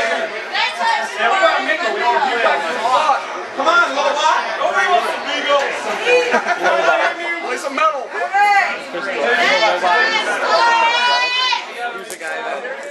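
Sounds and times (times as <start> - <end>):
indistinct chatter: 0.0 - 12.9.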